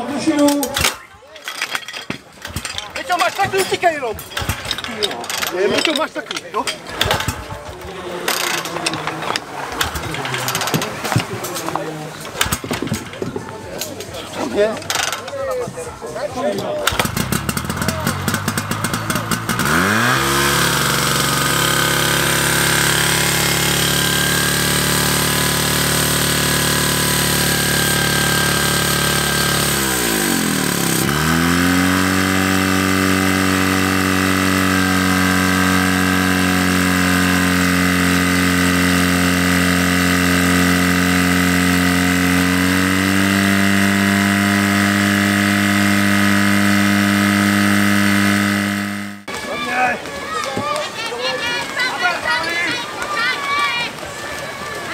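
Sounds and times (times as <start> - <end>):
fire pump engine running: 1.6 - 54.9.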